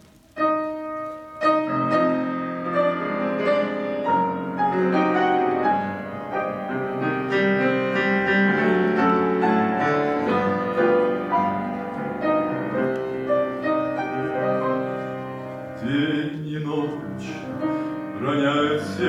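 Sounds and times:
grand piano playing: 0.0s - 19.0s.

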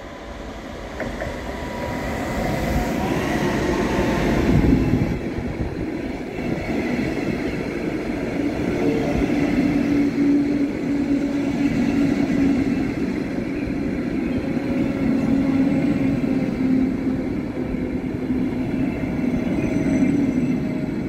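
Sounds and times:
train passing rumble: 0.0s - 21.0s.

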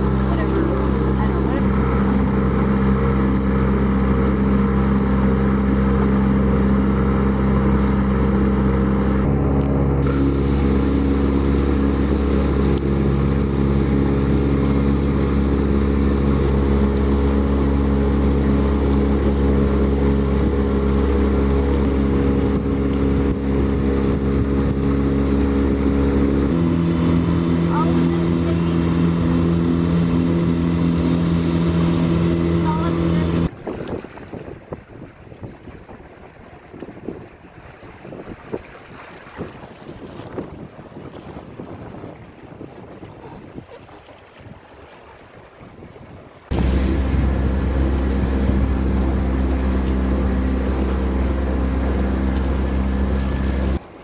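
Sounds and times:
boat motor droning: 0.0s - 54.0s.

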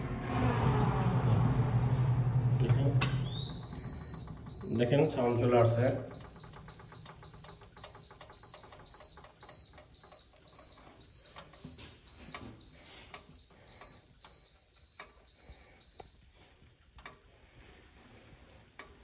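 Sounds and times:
oven alarm beeping: 2.7s - 17.2s.

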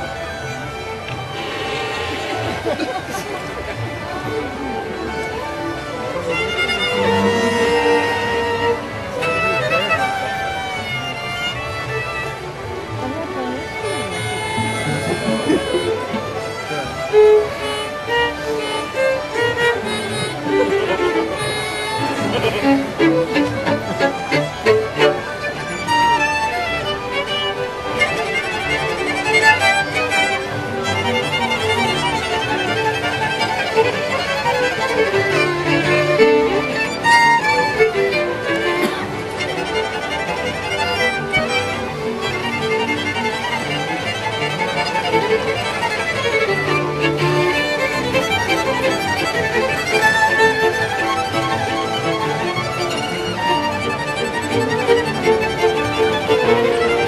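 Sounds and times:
cello: 0.0s - 57.0s
fiddles playing quick runs: 0.0s - 57.0s.

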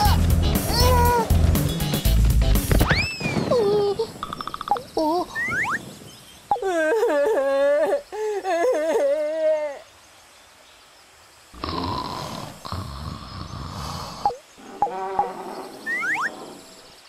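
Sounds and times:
cartoon dinosaur crying wail: 0.0s - 1.3s.

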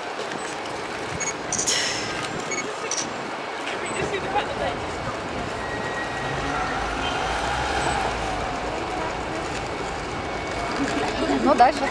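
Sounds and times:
vehicle engine rumbling: 0.3s - 11.9s
faint voices: 2.5s - 11.9s.

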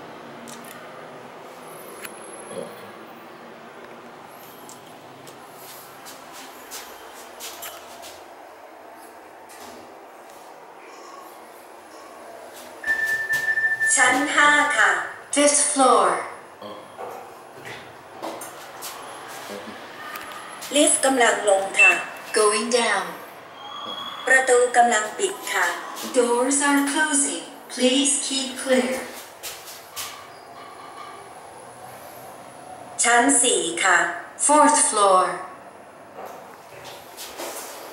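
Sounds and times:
elevator running with faint whine: 0.0s - 37.9s
high electronic beep: 12.8s - 14.3s, 21.8s - 22.6s.

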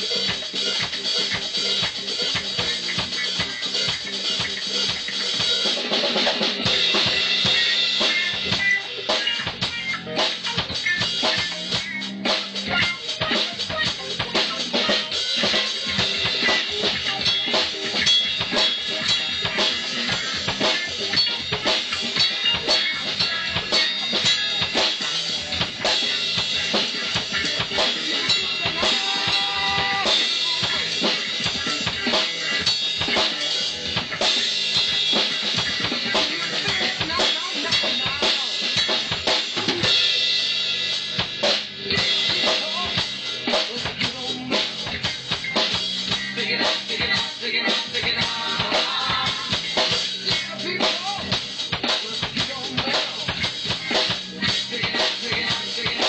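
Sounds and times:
drum kit punk beat: 0.0s - 56.0s.

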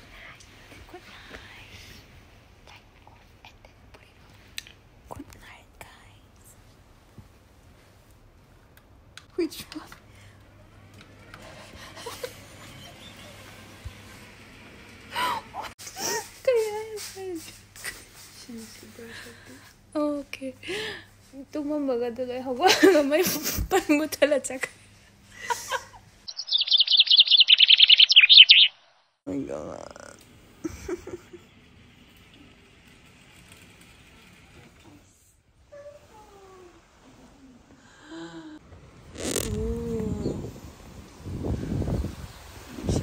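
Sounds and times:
faint room hiss: 0.0s - 26.6s.

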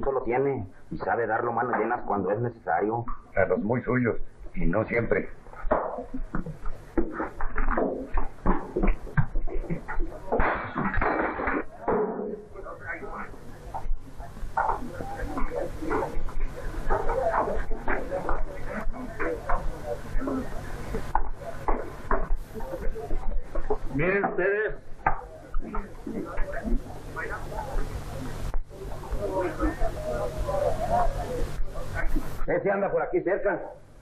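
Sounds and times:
people talking: 0.0s - 6.6s, 9.5s - 33.8s
steady low hum: 0.0s - 34.0s.

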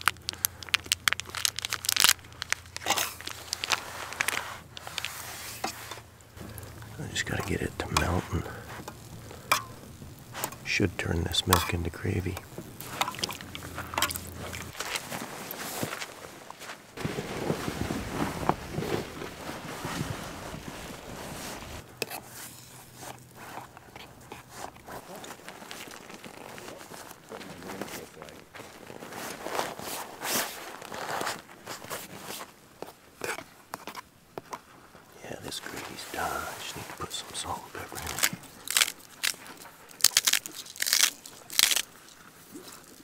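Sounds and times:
tent fabric rustling: 0.0s - 11.2s, 12.0s - 33.1s, 34.6s - 43.0s.

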